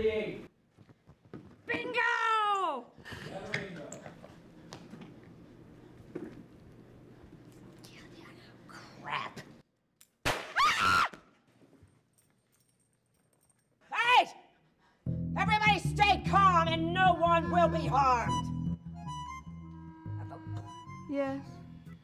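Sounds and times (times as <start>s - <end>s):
woman shouting: 1.7s - 2.9s, 13.9s - 14.5s
loud high scream: 10.6s - 11.2s.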